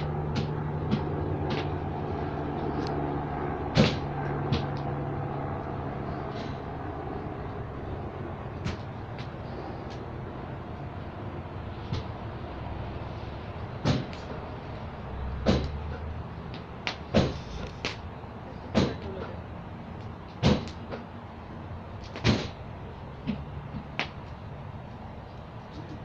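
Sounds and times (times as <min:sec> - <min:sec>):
campfire burning: 0:00.0 - 0:26.0.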